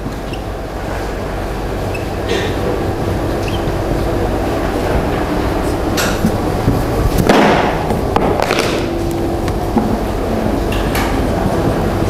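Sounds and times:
low room hum: 0.0 - 12.0
marker squeaking on whiteboard: 3.4 - 3.7.

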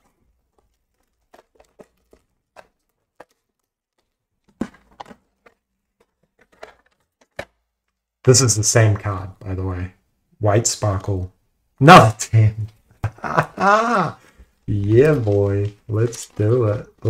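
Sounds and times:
plastic cases clicking and rustling: 0.0 - 8.1.

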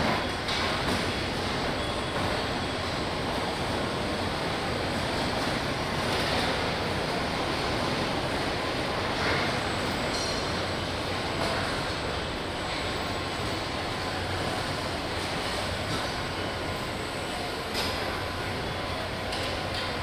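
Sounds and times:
factory machinery rumble and hum: 0.0 - 20.0.

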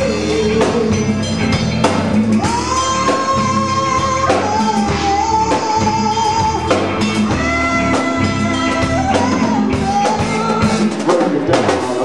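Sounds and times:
bending lead guitar notes: 0.0 - 12.0
drum kit: 0.0 - 12.0
guitars: 0.0 - 12.0.

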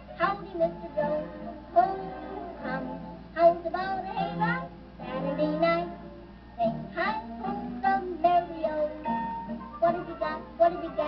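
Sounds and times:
girl singing: 0.0 - 11.0
musical accompaniment: 0.0 - 11.0.

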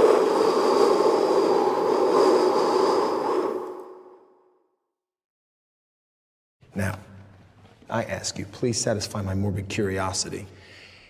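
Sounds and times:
rushing noise with high tone: 0.0 - 4.3.

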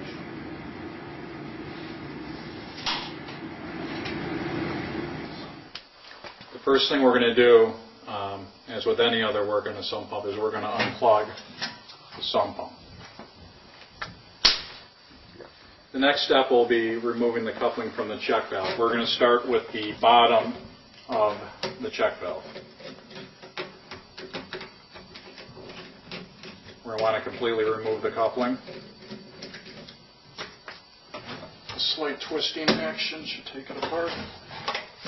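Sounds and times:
sharp smack: 14.4 - 14.8.

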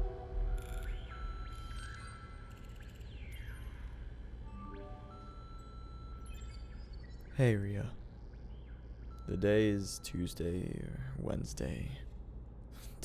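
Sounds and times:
quiet ambient music with chimes: 0.0 - 12.2.

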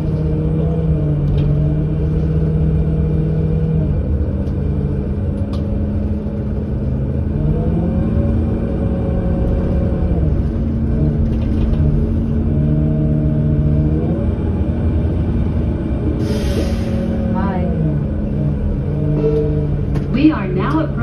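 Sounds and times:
bus engine rumbling: 0.0 - 21.0.

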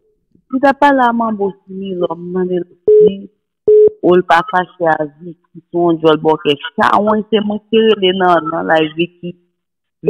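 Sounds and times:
speech over phone line: 0.6 - 3.3, 3.9 - 9.4
telephone tone beeps: 2.9 - 4.5.

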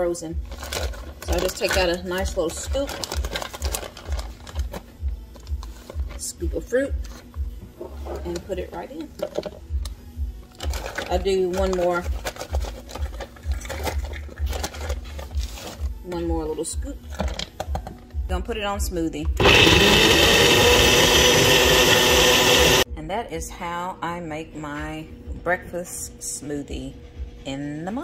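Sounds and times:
blender running: 19.4 - 22.8.

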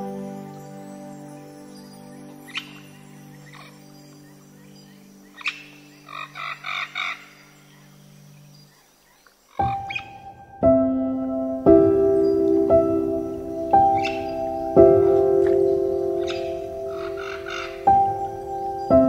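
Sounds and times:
slow piano music: 0.0 - 8.7, 9.6 - 19.0
birds chirping: 0.0 - 19.0.

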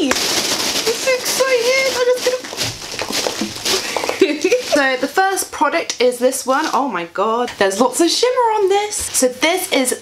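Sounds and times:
packing chips rustling: 0.0 - 5.5
woman's voice: 0.8 - 2.6, 4.0 - 10.0.

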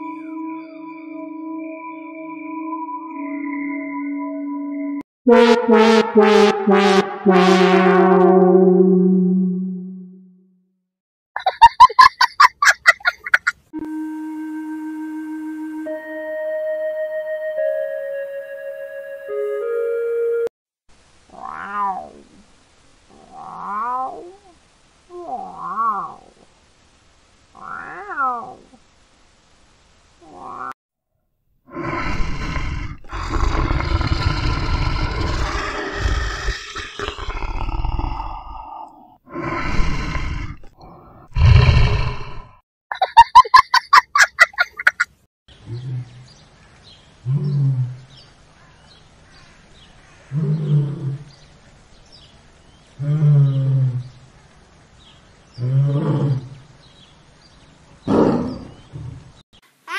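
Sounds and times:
lion roaring and growling: 31.7 - 42.6, 50.3 - 51.3, 55.6 - 56.6
lion grunting: 31.8 - 42.5.

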